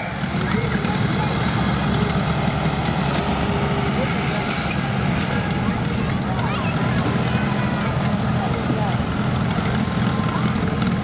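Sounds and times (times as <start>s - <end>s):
tractor engine running hard: 0.0s - 11.0s.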